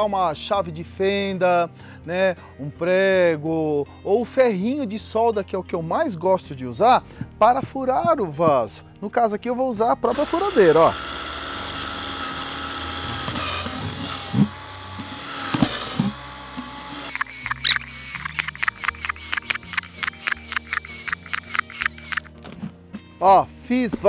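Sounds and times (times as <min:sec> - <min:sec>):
background music with quick beat: 0:07.2 - 0:08.8, 0:17.1 - 0:22.3
cordless drill drilling plastic: 0:10.1 - 0:22.3.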